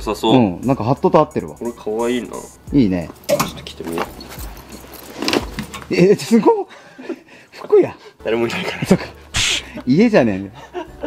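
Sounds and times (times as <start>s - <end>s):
clothing rustling: 3.0s - 6.5s.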